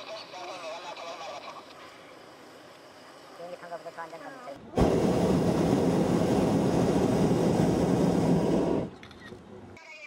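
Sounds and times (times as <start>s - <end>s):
propane burner firing: 4.7s - 9.5s.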